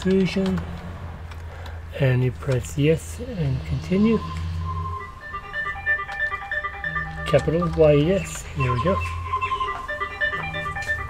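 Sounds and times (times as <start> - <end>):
steady low hum: 0.9 - 11.0
mobile phone ringtone: 4.1 - 11.0.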